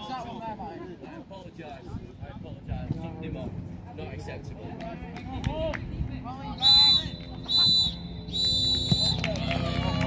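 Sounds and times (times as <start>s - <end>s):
referee's whistle blast: 6.6s - 9.2s.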